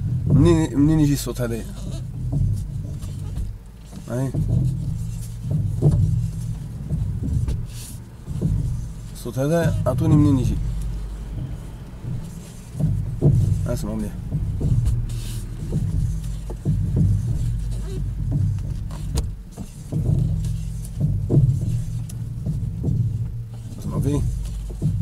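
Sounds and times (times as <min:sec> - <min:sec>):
car running on road from inside: 0:00.0 - 0:25.0
steering knocks: 0:00.0 - 0:25.0.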